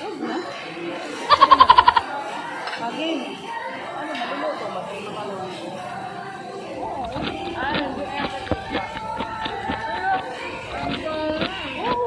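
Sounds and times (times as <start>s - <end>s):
voices talking: 0.6s - 12.0s.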